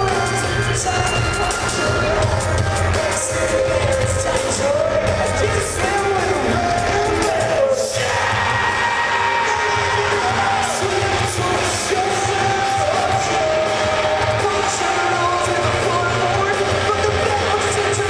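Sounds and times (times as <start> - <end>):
live rock band playing: 0.0 - 18.0
person singing: 0.0 - 18.0.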